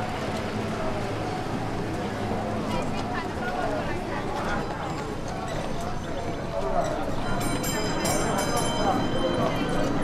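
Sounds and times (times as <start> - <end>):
indistinct chatter of passers-by: 0.0 - 10.0
steady clip-clop: 0.0 - 10.0.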